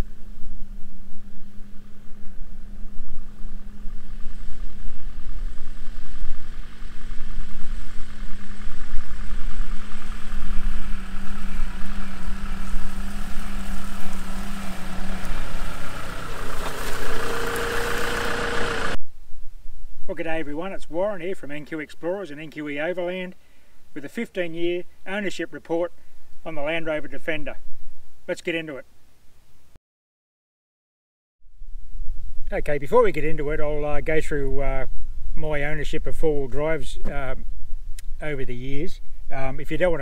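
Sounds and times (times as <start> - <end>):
diesel vehicle driving slowly: 0.0 - 19.0.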